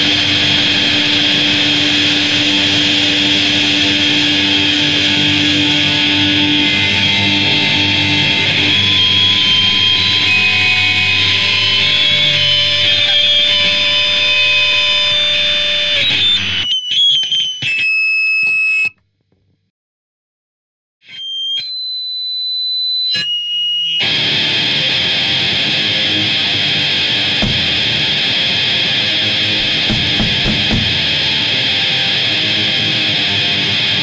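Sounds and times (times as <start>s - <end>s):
punk band playing: 0.0s - 16.6s, 27.1s - 31.9s
high guitar feedback tones: 0.0s - 18.9s, 21.0s - 34.0s.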